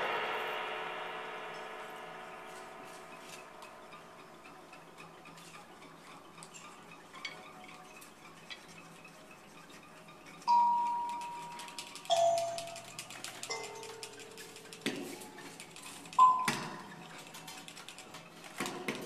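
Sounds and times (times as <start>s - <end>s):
bell-like hand percussion tones: 10.5s - 14.6s.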